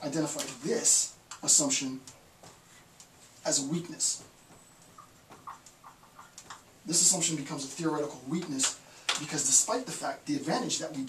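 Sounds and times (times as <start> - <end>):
marker squeaking on whiteboard: 4.2 - 6.8.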